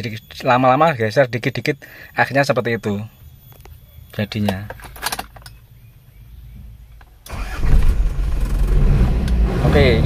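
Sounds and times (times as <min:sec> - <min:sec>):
car engine running: 0:07.3 - 0:10.0.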